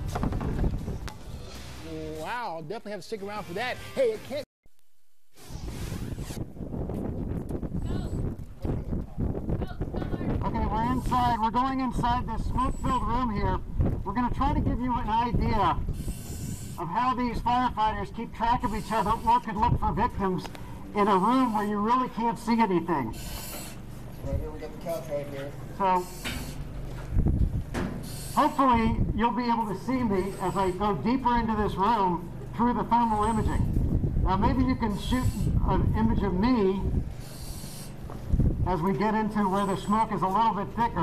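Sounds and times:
wind on microphone: 0.0 - 1.5, 5.4 - 18.8, 26.4 - 28.0, 28.7 - 29.3, 33.2 - 39.0
transition swoosh: 5.3 - 6.5
breath hissing through mask: 37.1 - 38.0.

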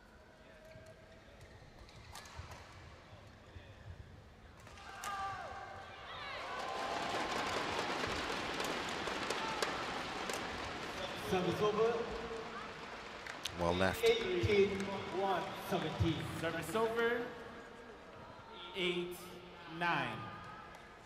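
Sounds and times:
crowd noise: 5.4 - 21.0.

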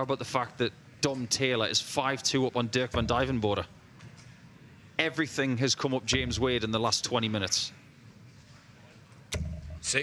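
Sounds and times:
dart striking dartboard: 9.3 - 9.8.

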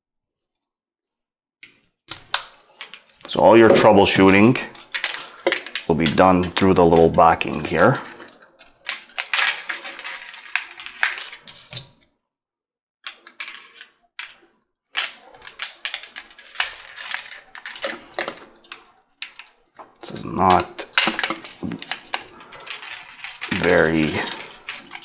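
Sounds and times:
plastic clicks and scrapes: 1.6 - 12.1, 13.0 - 25.0.

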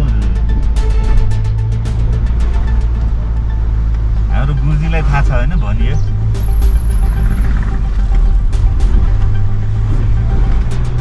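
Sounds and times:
background music: 0.0 - 11.0
car cabin rumble: 0.0 - 11.0
high whine: 0.0 - 11.0.

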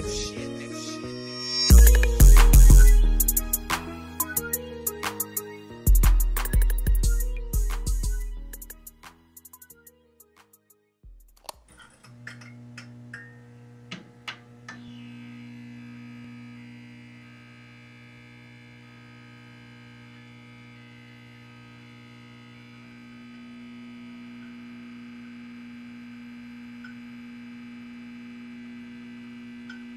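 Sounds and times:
electrical mains hum: 11.5 - 29.9.

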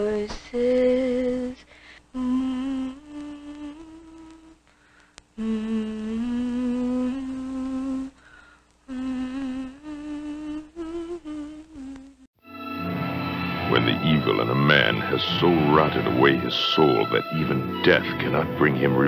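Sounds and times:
person humming a slow tune: 2.2 - 4.6, 5.4 - 8.2, 8.9 - 12.3.

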